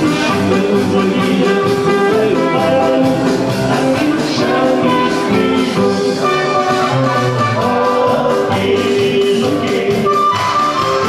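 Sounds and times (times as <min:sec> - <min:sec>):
live dance band: 0:00.0 - 0:11.0.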